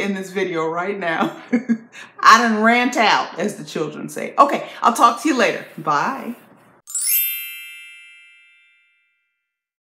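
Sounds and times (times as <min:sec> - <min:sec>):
shimmering chime: 0:06.9 - 0:09.6.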